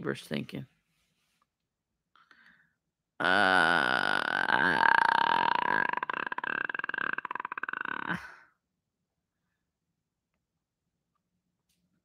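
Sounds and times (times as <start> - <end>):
man burping: 3.2 - 8.5.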